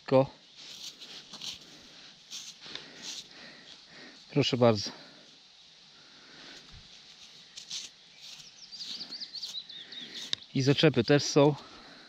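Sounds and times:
gloved hands rubbing soil: 0.6s - 4.8s, 6.5s - 11.7s
songbird warbling: 8.1s - 10.6s.

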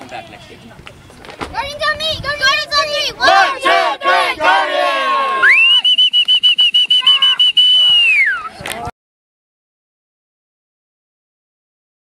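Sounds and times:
children cheering: 2.6s - 5.6s, 6.8s - 8.5s
whistle trill: 5.4s - 8.5s.

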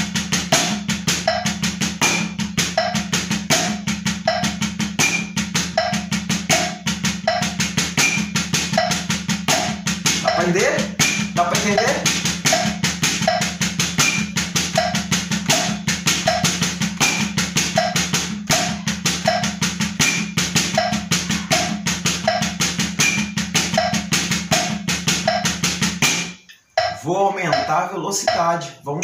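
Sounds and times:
drumsticks on a practice pad: 0.1s - 28.6s
metronome clicking: 0.6s - 29.0s.

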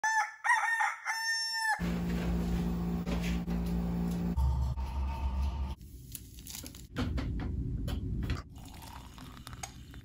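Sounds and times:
rooster crowing: 0.0s - 1.9s.

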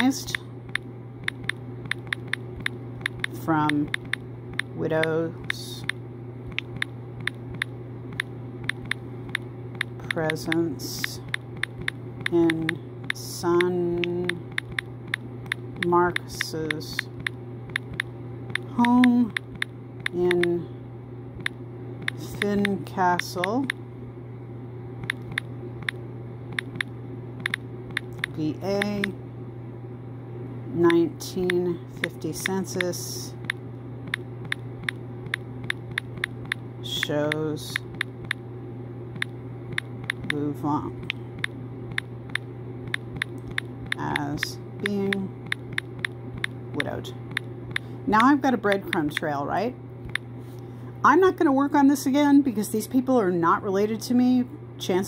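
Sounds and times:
steady low hum: 0.0s - 55.0s
touchscreen keyboard clicks: 0.7s - 20.6s, 26.6s - 29.1s.

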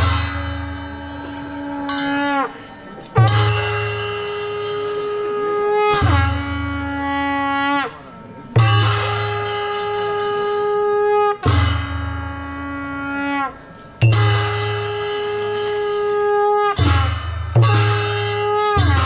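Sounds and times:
low drums: 0.0s - 7.9s, 8.5s - 19.0s
wind instrument long held notes: 0.0s - 19.0s.

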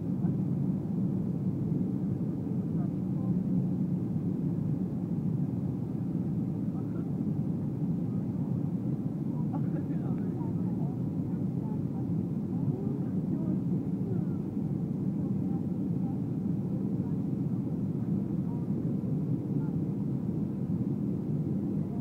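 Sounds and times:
airliner cabin engine drone: 0.0s - 22.0s
faint passenger voices: 0.0s - 22.0s.

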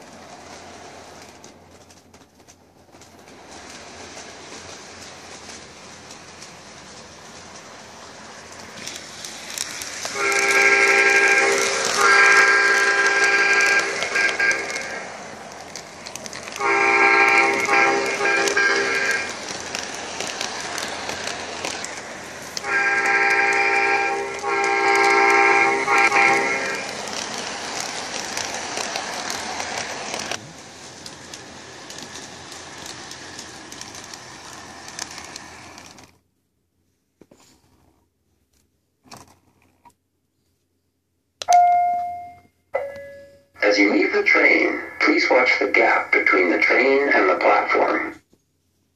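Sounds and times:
model train running on track: 0.0s - 36.2s, 42.8s - 48.2s
train horn sound effect blasts: 10.2s - 15.1s, 16.5s - 19.3s, 22.6s - 26.9s.

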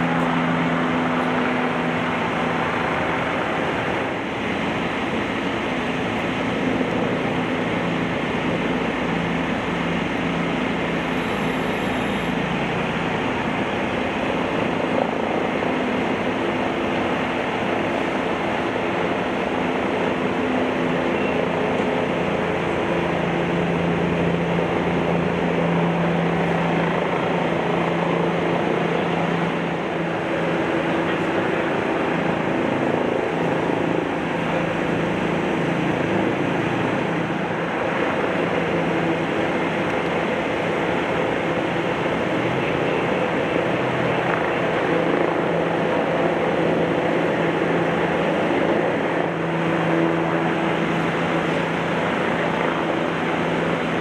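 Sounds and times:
diesel engine droning: 0.0s - 54.0s.

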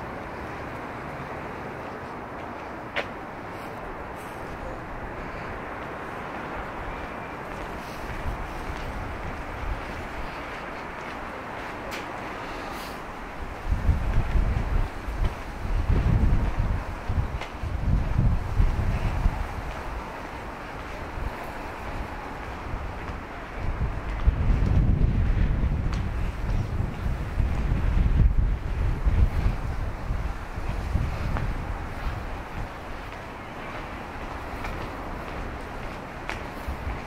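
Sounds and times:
city background noise: 0.0s - 37.0s
wind buffeting microphone: 0.0s - 37.0s.

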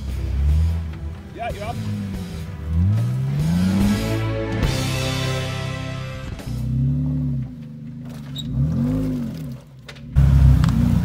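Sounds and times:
engine revving: 0.0s - 11.0s.

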